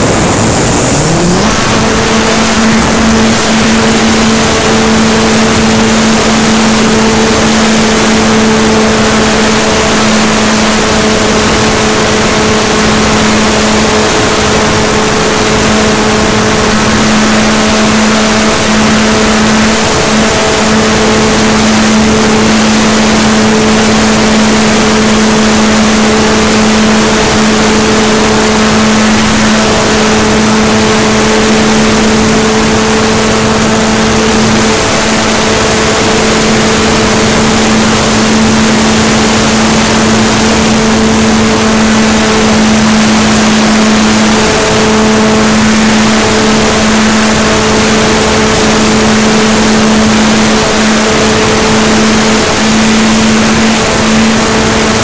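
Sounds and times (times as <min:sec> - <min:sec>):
airflow rushing over microphone: 0:00.0 - 0:55.0
model aircraft motor hum: 0:00.0 - 0:55.0.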